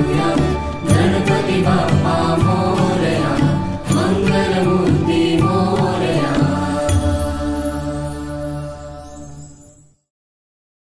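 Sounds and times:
devotional song with chanting: 0.0 - 10.0.

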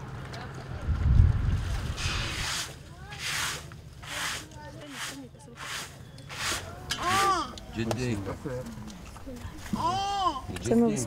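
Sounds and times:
wind buffeting microphone: 0.7 - 2.4.

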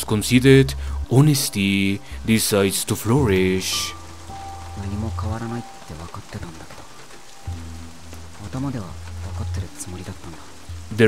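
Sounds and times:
person speaking: 0.0 - 6.9, 8.4 - 11.0
soft background music: 0.0 - 11.0
steady rain falling: 0.0 - 11.0.

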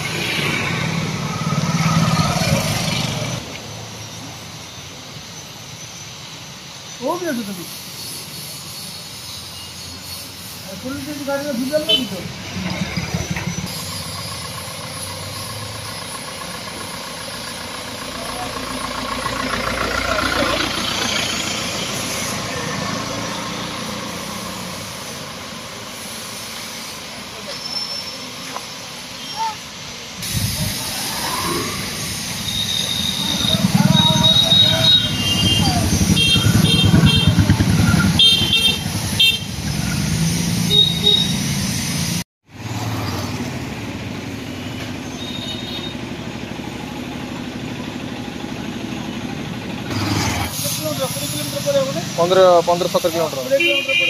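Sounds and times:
motorbike engines passing: 0.0 - 5.2, 10.3 - 26.0, 27.0 - 54.0.

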